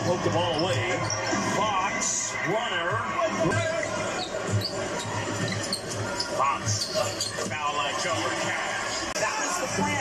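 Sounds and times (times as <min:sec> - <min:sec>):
arena crowd noise: 0:00.0 - 0:10.0
sneaker squeaks: 0:04.1 - 0:07.6.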